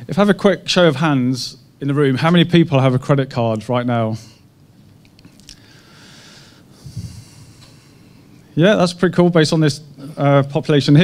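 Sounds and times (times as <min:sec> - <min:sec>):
man breathing into a microphone: 0:05.5 - 0:08.3.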